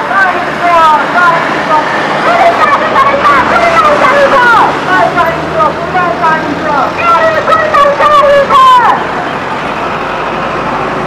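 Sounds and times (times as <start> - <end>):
road traffic noise: 0.0 - 11.0.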